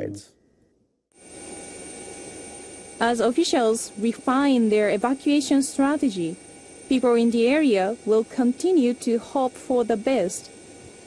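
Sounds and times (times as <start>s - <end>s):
faint high whine: 0.0s - 11.0s
aircraft engine drone: 1.2s - 11.0s.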